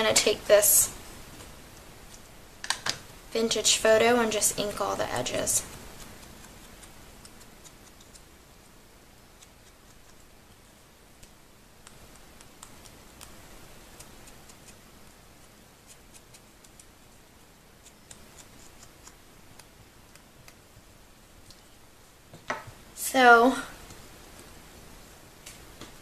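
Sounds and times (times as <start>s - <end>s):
low room hiss: 0.0s - 26.0s
foam pad dabbing on paper: 3.3s - 20.9s.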